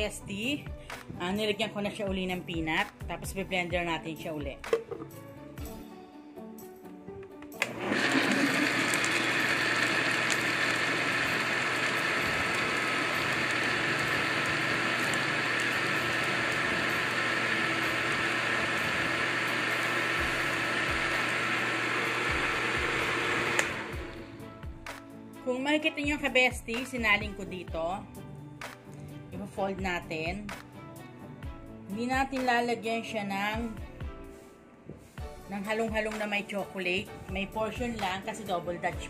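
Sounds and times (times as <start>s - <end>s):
electric blender running: 7.6s - 24.3s.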